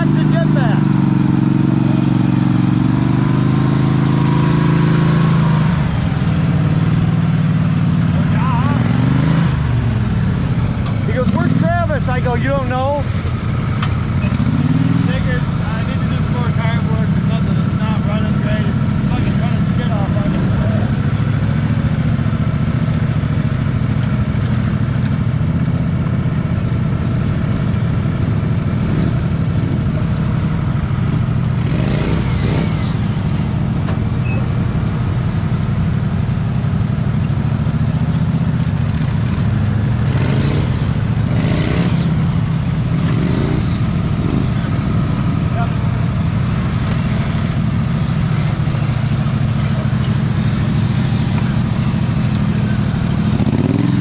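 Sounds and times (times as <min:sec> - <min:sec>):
lawn tractor engines running: 0:00.0 - 0:54.0
bursts of voices: 0:08.2 - 0:09.0.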